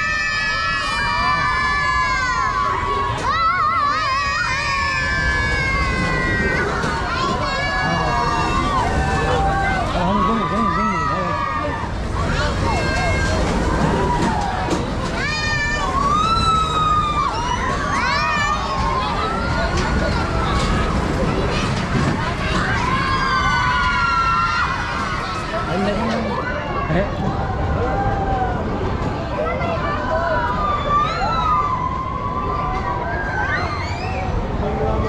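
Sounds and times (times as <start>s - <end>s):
fairground din: 0.0s - 35.0s
low rumble of ride and crowd: 0.0s - 35.0s.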